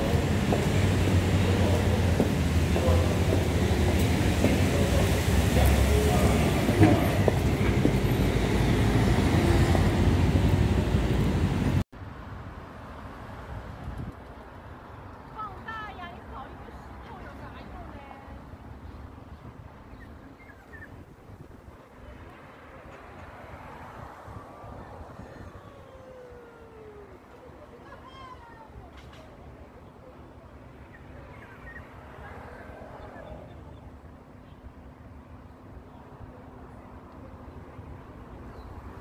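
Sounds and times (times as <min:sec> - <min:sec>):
low city rumble: 0:00.0 - 0:39.0.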